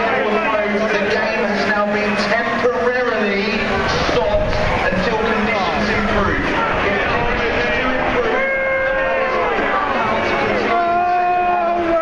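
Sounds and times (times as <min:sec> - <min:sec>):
crowd voices calling: 0:00.0 - 0:12.0
low crowd rumble: 0:00.0 - 0:12.0.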